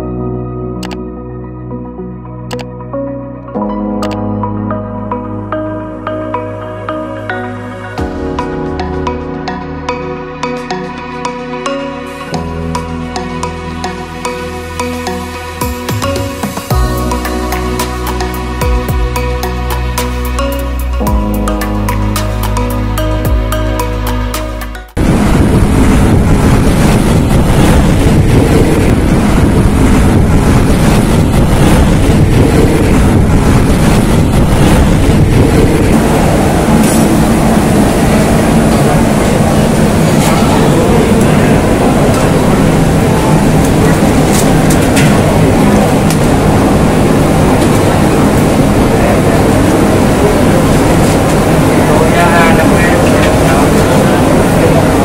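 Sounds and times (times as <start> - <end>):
road traffic: 10.6 - 55.0
many people talking: 38.5 - 44.9, 48.7 - 55.0.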